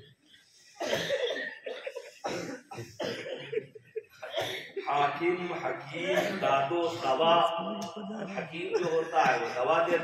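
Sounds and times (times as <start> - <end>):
man's vocal bursts over loudspeaker: 4.8 - 7.6.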